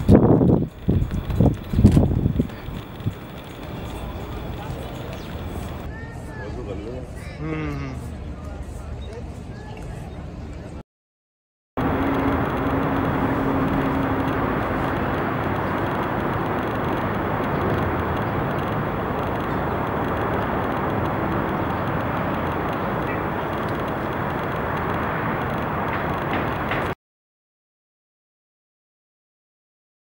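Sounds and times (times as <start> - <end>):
city traffic rumble: 0.0 - 5.9, 11.8 - 27.0.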